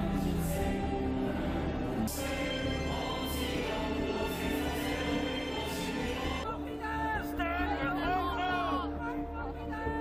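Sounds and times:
choir singing sustained notes: 0:00.0 - 0:10.0.

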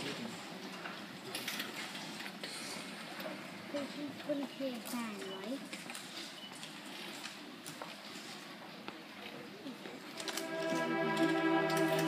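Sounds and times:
audience rustling: 0:10.0 - 0:12.0.

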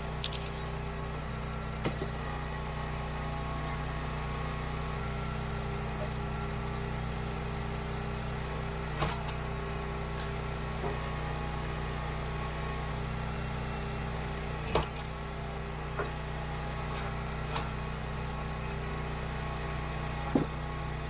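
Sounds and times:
log splitter engine running: 0:00.0 - 0:21.0.

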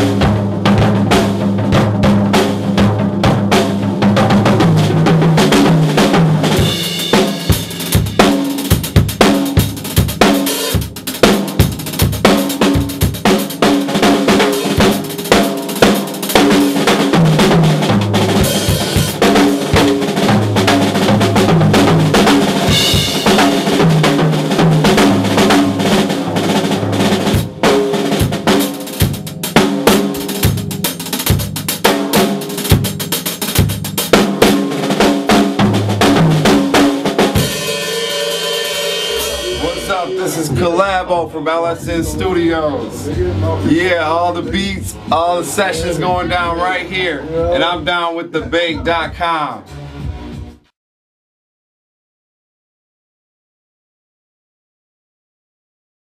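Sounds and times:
drum kit solo groove: 0:00.0 - 0:50.7
cymbals ringing: 0:37.4 - 0:41.2.

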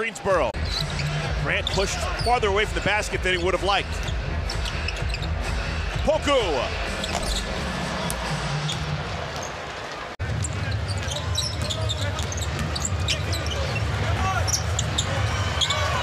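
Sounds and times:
arena crowd hum: 0:00.0 - 0:16.0
sneakers squeaking: 0:00.6 - 0:02.4, 0:03.4 - 0:05.7, 0:06.8 - 0:16.0.

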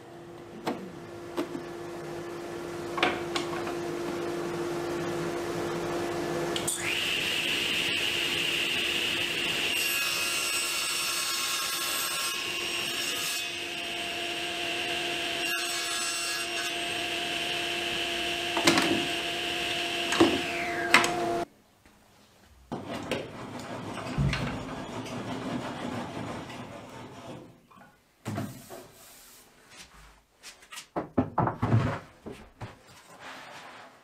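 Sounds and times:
table saw whine: 0:04.1 - 0:21.5
knocks and handling noises: 0:29.8 - 0:33.6.

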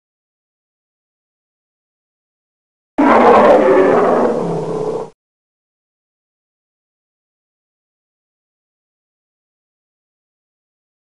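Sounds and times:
animal roar: 0:03.0 - 0:05.2.

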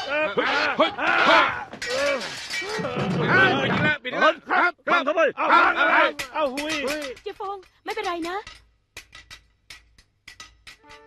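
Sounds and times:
men yelling battle cries: 0:00.0 - 0:07.0.

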